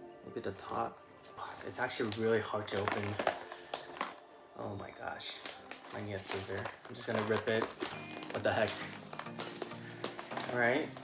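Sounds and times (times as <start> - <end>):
man's soft wordless voice: 0.2 - 3.4.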